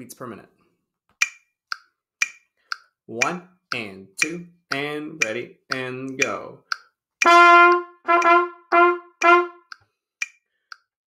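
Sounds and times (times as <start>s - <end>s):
trumpet notes: 7.2s - 9.7s.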